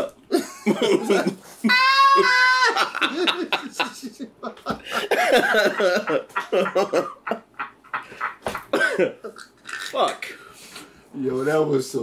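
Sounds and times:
men laughing hard: 0:00.3 - 0:09.4.

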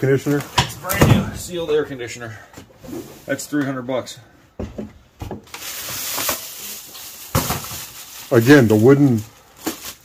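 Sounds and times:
plastic bag crinkling: 0:05.5 - 0:10.0.

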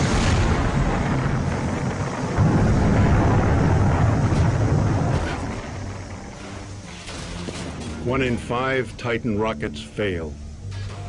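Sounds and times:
rocket explosion rumble: 0:00.0 - 0:08.3.

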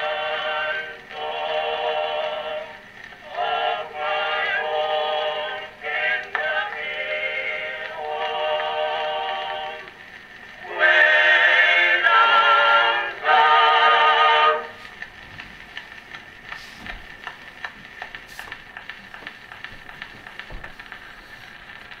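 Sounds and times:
vocal group singing on record: 0:00.0 - 0:10.0, 0:10.6 - 0:14.8
record crackles and clicks: 0:00.0 - 0:22.0
record surface hiss: 0:00.0 - 0:22.0.

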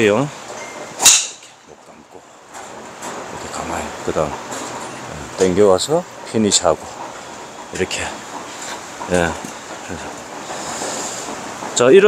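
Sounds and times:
open-air background hiss: 0:00.0 - 0:12.0.

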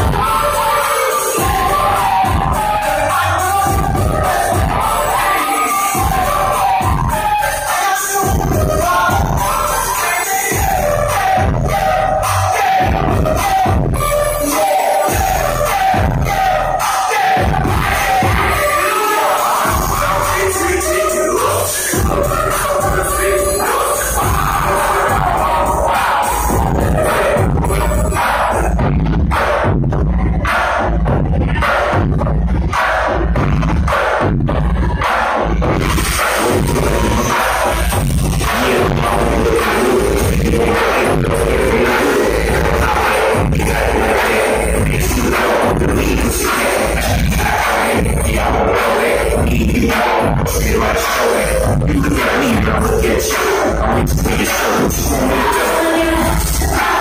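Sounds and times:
loud dance music: 0:00.0 - 0:57.0.

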